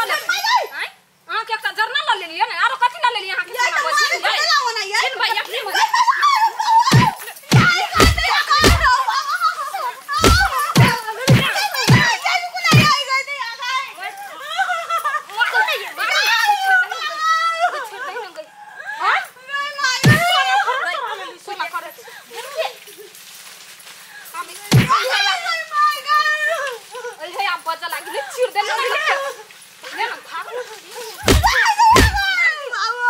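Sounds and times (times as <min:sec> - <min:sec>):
women shouting and wailing: 0:03.4 - 0:22.6, 0:24.3 - 0:33.0
women crying out: 0:06.2 - 0:12.2, 0:24.2 - 0:27.4, 0:30.4 - 0:33.0
heavy thump of a blow: 0:06.9 - 0:08.9, 0:10.2 - 0:12.1, 0:20.0 - 0:20.3, 0:24.7 - 0:25.0, 0:31.2 - 0:32.2.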